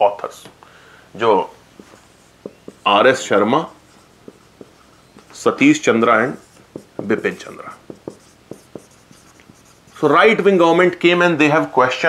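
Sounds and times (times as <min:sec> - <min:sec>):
marker pen writing on whiteboard: 0:01.7 - 0:10.8.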